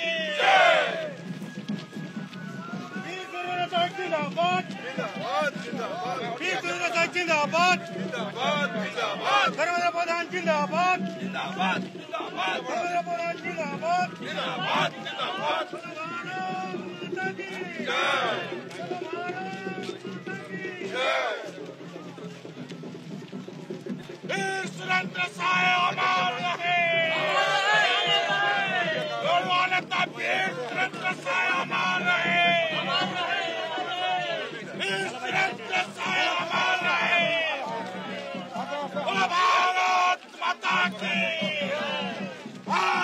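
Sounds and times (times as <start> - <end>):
crowd shouting slogans: 0.0 - 1.2, 2.8 - 21.7, 24.3 - 43.0
loud drawn-out shout: 0.0 - 1.2, 14.2 - 19.6, 20.4 - 21.5, 24.3 - 43.0
male voices chanting in chorus: 3.6 - 21.6, 24.3 - 43.0.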